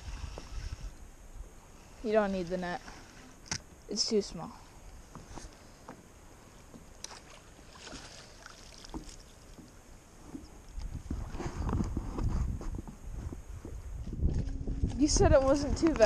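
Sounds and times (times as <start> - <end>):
water sounds: 0.0 - 11.4, 13.6 - 16.0
low rumble: 11.0 - 16.0.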